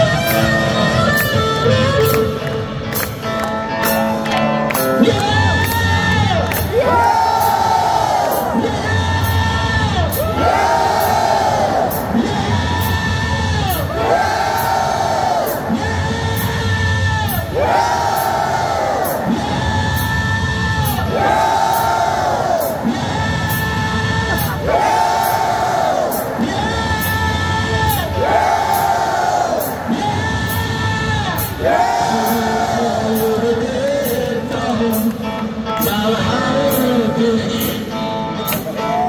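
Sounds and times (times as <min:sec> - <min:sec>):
live blues-rock band: 0:00.0 - 0:06.9
crowd singing and cheering: 0:00.0 - 0:39.0.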